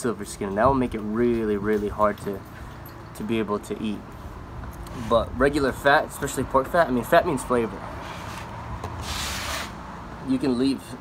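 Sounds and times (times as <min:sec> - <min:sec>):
cutting board scraping across table: 0:08.0 - 0:09.8.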